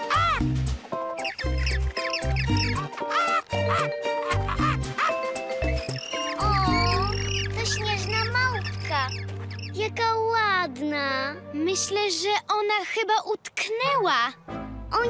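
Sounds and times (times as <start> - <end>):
squeaky cartoon vocalisations: 0.0 - 0.4, 1.2 - 10.0
playful cartoon music with bass: 0.0 - 12.1.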